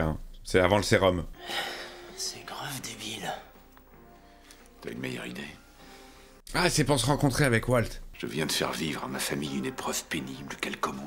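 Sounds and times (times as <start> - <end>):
faint music: 0.0 - 11.0
whispered dialogue: 1.4 - 5.8.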